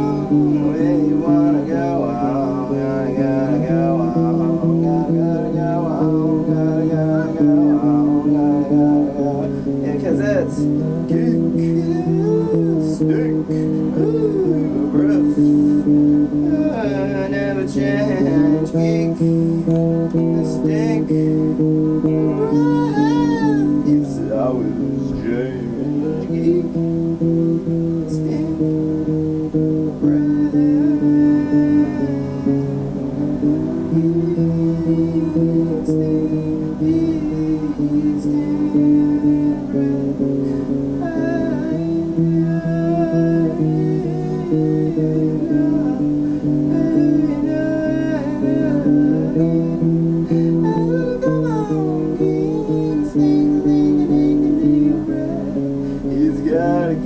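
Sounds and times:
acoustic guitar strumming: 0:00.0 - 0:57.0
person singing: 0:00.0 - 0:57.0.

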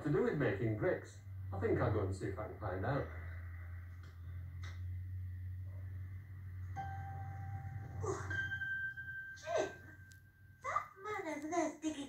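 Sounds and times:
steady low hum: 0:00.0 - 0:12.0
chime-like musical tone: 0:06.8 - 0:10.6.

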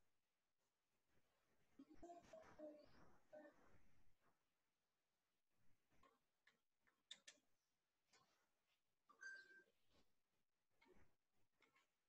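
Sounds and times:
faint clicks: 0:06.4 - 0:07.5.

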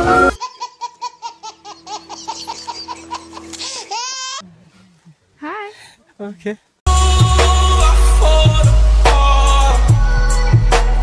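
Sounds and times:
baby laughing: 0:00.4 - 0:04.4
music: 0:06.9 - 0:11.0.

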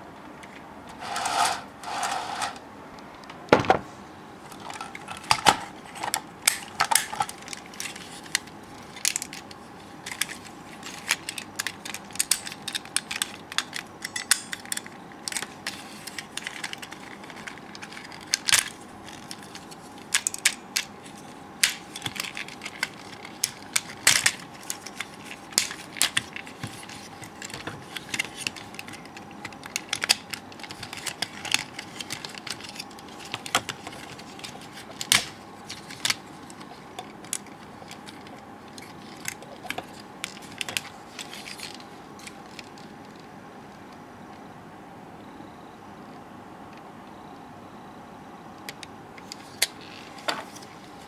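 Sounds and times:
plastic toy parts clicking: 0:04.7 - 0:20.9, 0:21.6 - 0:42.8.

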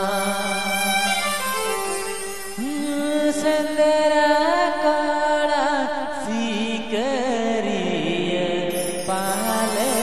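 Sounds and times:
instrumental accompaniment: 0:00.0 - 0:03.7.

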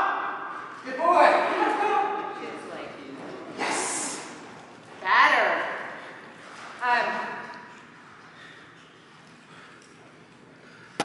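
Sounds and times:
person speaking in echoing room: 0:00.0 - 0:06.2.

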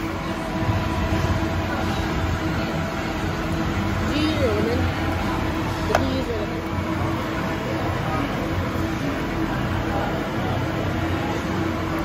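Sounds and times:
low rumble and hum: 0:00.0 - 0:12.0.

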